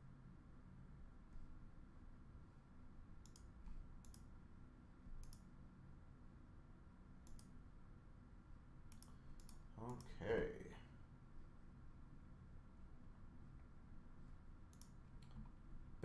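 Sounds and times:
faint sharp clicks: 3.2s - 4.3s, 5.2s - 5.5s, 7.2s - 7.6s, 8.9s - 10.1s, 14.7s - 15.5s
man's voice: 9.8s - 10.9s.

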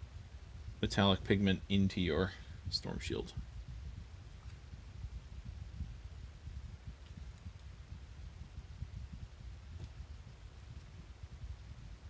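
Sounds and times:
low room noise rumble: 0.0s - 12.0s.

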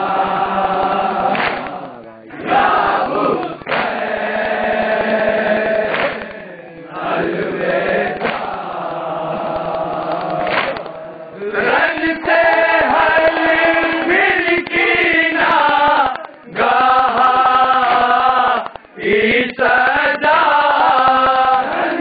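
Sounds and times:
men chanting a lament: 0.0s - 22.0s
hands striking chests: 1.2s - 6.4s, 7.7s - 11.0s, 12.0s - 19.6s.

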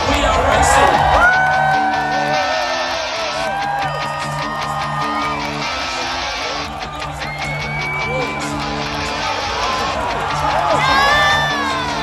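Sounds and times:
guitar with gliding notes: 0.0s - 12.0s.

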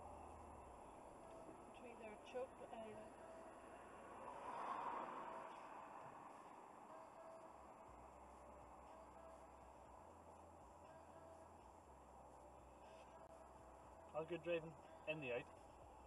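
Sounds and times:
car passing close by: 2.9s - 8.0s.

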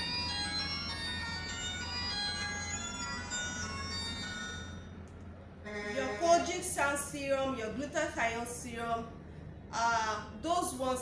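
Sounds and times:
phone ringtone chiming melody: 0.0s - 5.0s.

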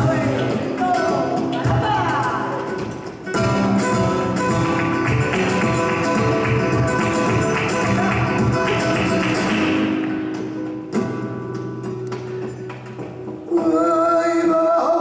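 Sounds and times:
cajon drumming: 0.0s - 15.0s
flamenco guitars playing: 0.0s - 15.0s
hand-clapping: 0.1s - 13.4s.

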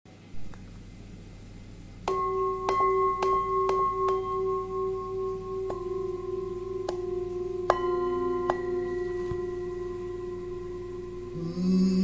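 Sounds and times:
singing bowl bell ringing: 2.1s - 12.0s
low voice chanting: 11.3s - 12.0s.

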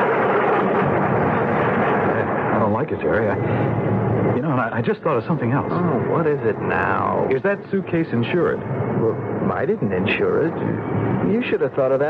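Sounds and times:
jet airliner drone: 0.0s - 12.0s.

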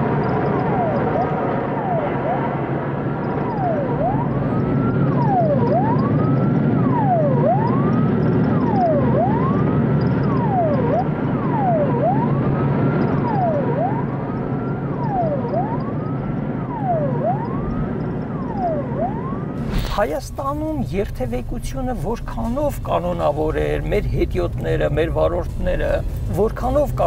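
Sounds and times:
police siren wailing: 0.0s - 27.0s
traffic noise: 0.0s - 27.0s.

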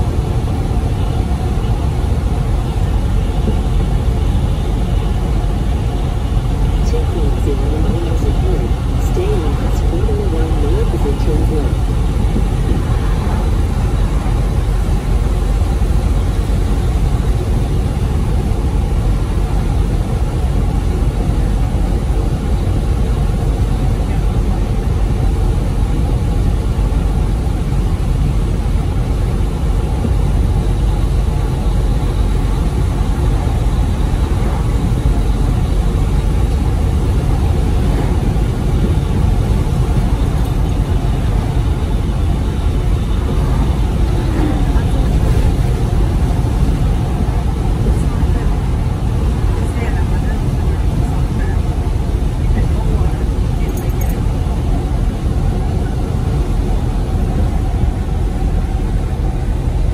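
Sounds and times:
truck engine and tyre drone: 0.0s - 59.9s.

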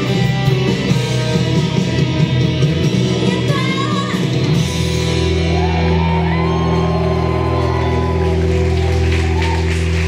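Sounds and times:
live music over sound system: 0.0s - 10.0s
audience shouts and whoops: 5.0s - 10.0s.

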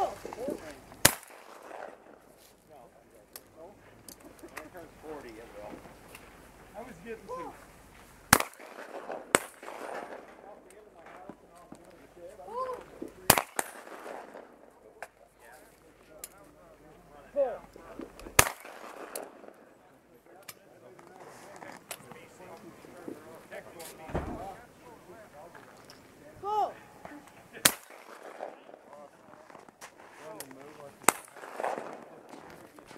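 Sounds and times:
shotgun shots with echo: 1.0s - 2.2s, 8.3s - 10.7s, 13.3s - 14.6s, 18.3s - 19.6s, 27.6s - 28.8s, 31.0s - 32.4s
person shouting a call: 7.2s - 7.6s, 26.4s - 27.3s.

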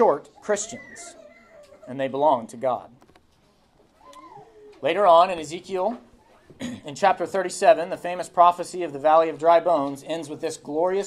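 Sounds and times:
child whining: 0.3s - 2.0s, 4.0s - 4.8s.

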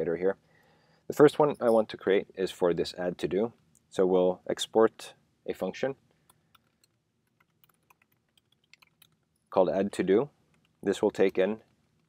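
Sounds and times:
keyboard typing: 6.5s - 9.2s.

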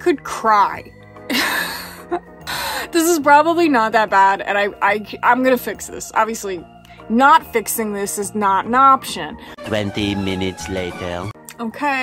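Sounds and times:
quiet background music: 0.0s - 12.0s
woman laughing: 1.3s - 3.0s.

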